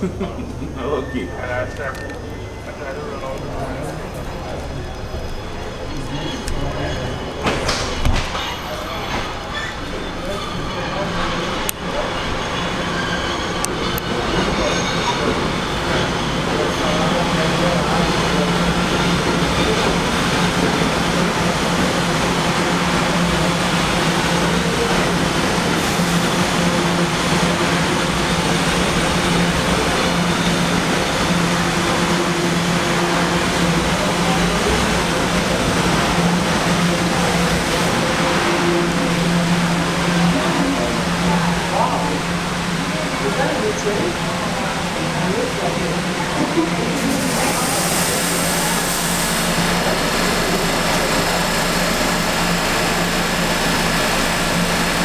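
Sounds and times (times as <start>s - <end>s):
subway train wheels rumbling on rail: 0.0s - 55.0s.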